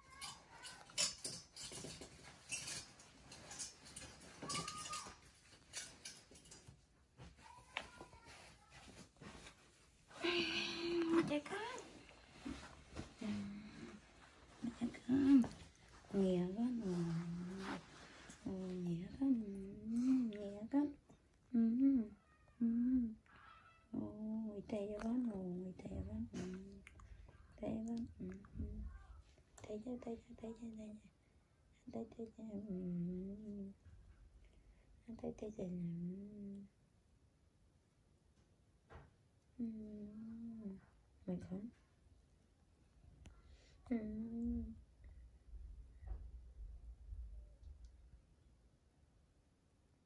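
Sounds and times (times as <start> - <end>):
rustling: 0.0 - 20.4
woman cooing softly: 10.2 - 11.3, 21.5 - 23.8.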